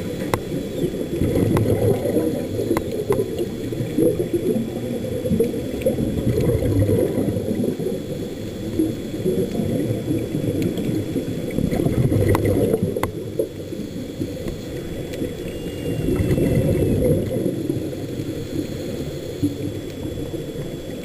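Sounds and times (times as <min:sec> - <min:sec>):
underwater bubbles gurgling: 0:00.0 - 0:21.0
faint clicks: 0:01.4 - 0:02.0, 0:02.6 - 0:03.5, 0:14.4 - 0:17.1.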